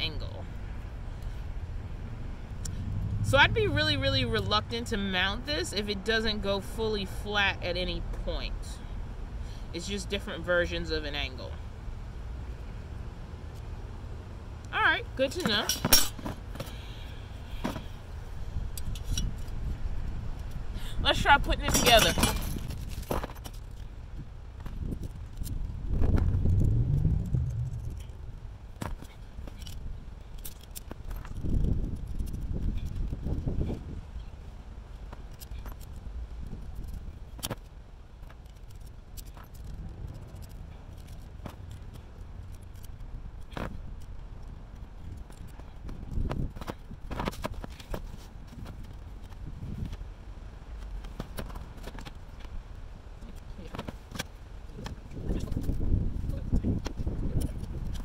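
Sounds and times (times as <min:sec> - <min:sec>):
wind rumbling on microphone: 0:00.0 - 0:06.8, 0:17.8 - 0:58.0
metal hardware clicking and clinking: 0:15.4 - 0:16.3, 0:21.6 - 0:23.8.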